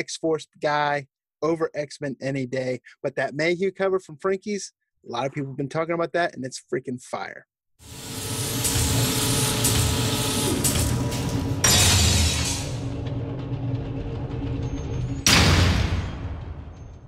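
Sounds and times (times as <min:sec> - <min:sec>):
dense mechanical rumble: 0:08.3 - 0:17.0
sudden booming hits: 0:10.6 - 0:17.0.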